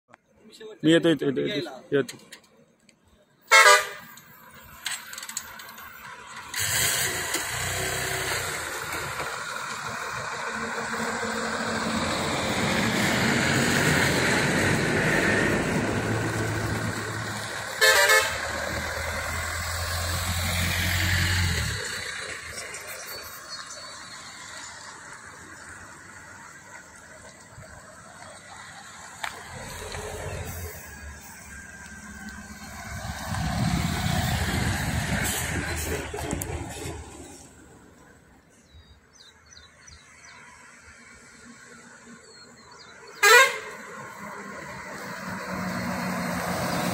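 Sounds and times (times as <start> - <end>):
vehicle horn blast: 3.5 - 4.2, 17.8 - 18.5, 43.2 - 43.8
cars driving past: 3.5 - 46.9.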